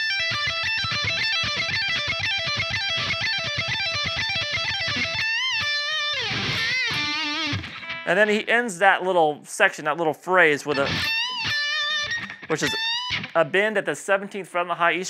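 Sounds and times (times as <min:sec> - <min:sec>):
electric guitar lick: 0:00.0 - 0:08.6, 0:10.7 - 0:13.6.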